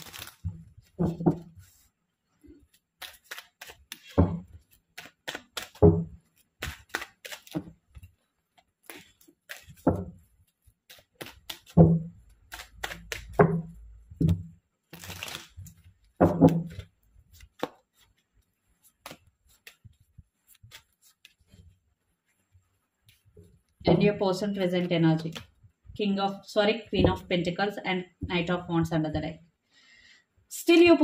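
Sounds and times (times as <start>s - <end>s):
cards being shuffled by hand: 0.0s - 25.7s
cards tapping: 3.0s - 8.1s, 16.2s - 18.1s.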